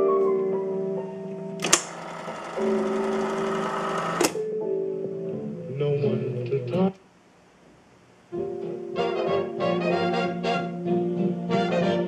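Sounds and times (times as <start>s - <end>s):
piano-led music: 0.0s - 5.8s, 8.4s - 12.0s
jukebox mechanism clicking: 1.6s - 4.4s
mechanical whirr: 1.6s - 4.4s.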